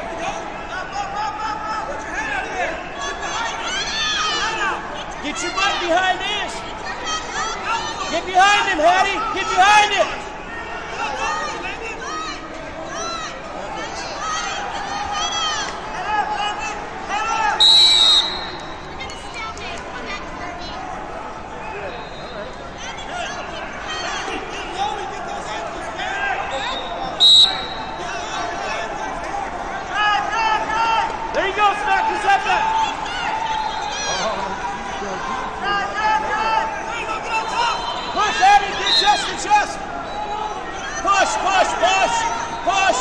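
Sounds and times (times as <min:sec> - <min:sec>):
overlapping voices in echoing hall: 0:00.0 - 0:43.0
referee's whistle blasts: 0:17.6 - 0:18.8, 0:21.8 - 0:22.5, 0:26.5 - 0:28.0, 0:37.4 - 0:39.4.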